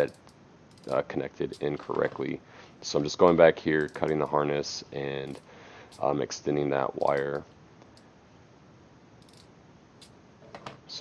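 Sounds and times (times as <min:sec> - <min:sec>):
wire connectors clicking: 0:00.0 - 0:02.3, 0:02.9 - 0:04.4, 0:07.0 - 0:08.1
faint room hiss: 0:00.0 - 0:11.0.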